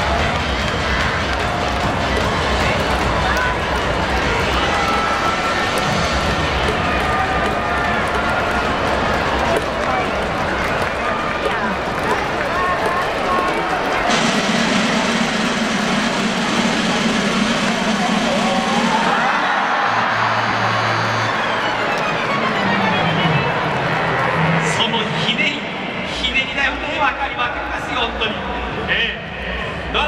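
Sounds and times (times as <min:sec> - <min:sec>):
music over public address: 0:00.0 - 0:30.0
stadium crowd hubbub: 0:00.0 - 0:30.0.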